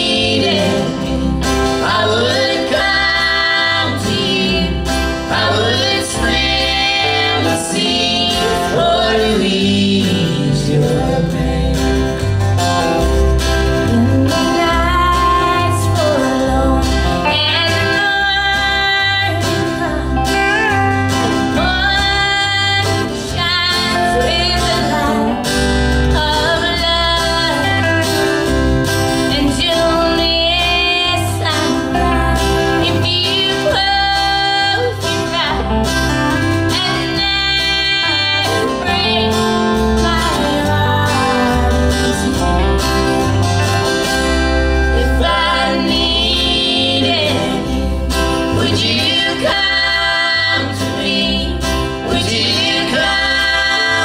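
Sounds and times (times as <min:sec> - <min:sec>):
woman singing: 0:00.0 - 0:12.1, 0:13.8 - 0:28.4, 0:29.2 - 0:43.2, 0:44.9 - 0:54.0
acoustic guitar: 0:00.0 - 0:54.0
bass notes: 0:00.0 - 0:54.0.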